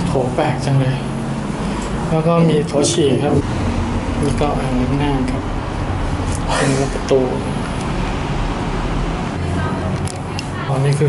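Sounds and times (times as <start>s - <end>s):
man's voice: 2.1s - 3.4s.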